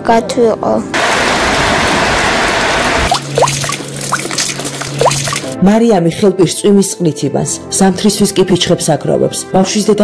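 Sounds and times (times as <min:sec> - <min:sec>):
heavy rain downpour: 0:01.0 - 0:03.4
water dripping and running: 0:03.1 - 0:05.6.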